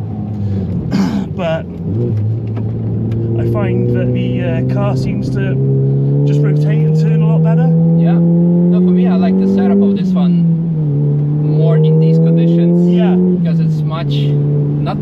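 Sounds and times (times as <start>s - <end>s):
car engine accelerating hard: 0.0s - 15.0s.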